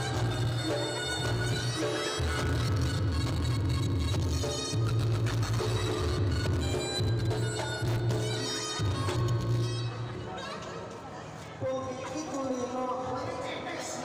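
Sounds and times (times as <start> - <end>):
shawm wailing melody: 0.0 - 10.4.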